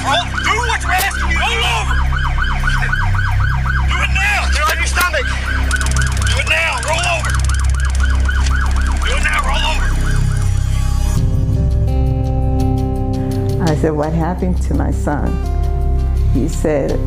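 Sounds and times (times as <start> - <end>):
police siren yelping: 0.0 - 11.2.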